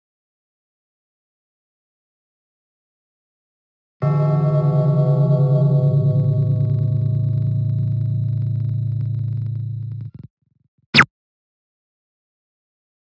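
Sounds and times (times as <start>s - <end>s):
low gong-like ringing tone: 4.0s - 10.1s.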